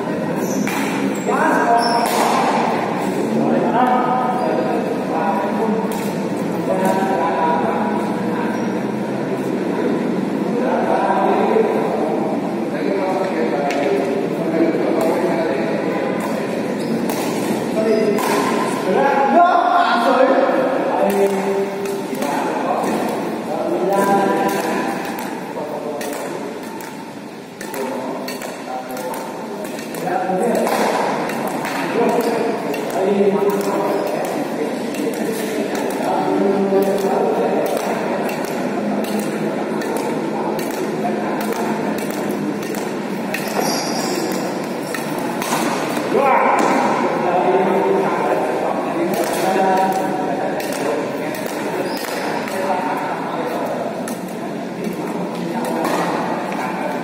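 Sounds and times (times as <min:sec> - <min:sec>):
people talking: 0:00.0 - 0:57.0
rackets hitting shuttlecock: 0:00.3 - 0:03.2, 0:05.8 - 0:07.1, 0:16.1 - 0:19.0, 0:21.0 - 0:56.6.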